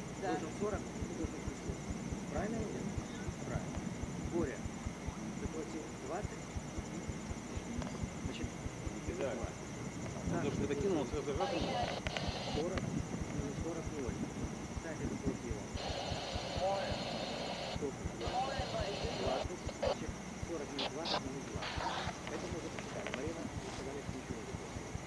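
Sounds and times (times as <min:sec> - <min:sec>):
muffled voices: 0:00.0 - 0:25.0
high buzzing: 0:10.9 - 0:12.7, 0:15.8 - 0:22.6.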